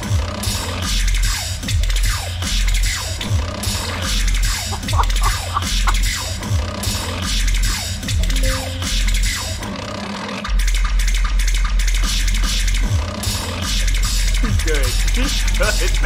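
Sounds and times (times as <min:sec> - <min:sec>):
looped beatboxed bass beat: 0:00.0 - 0:09.7, 0:10.5 - 0:16.0
scratch effects: 0:03.4 - 0:09.9.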